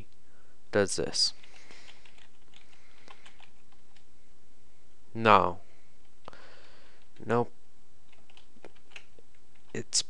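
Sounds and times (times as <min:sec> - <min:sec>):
computer keyboard typing: 0:01.4 - 0:04.1, 0:08.1 - 0:09.8.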